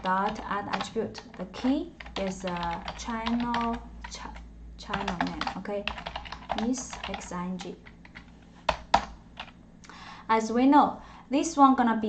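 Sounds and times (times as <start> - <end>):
computer keyboard keystrokes: 0.0 - 4.2, 4.9 - 9.5.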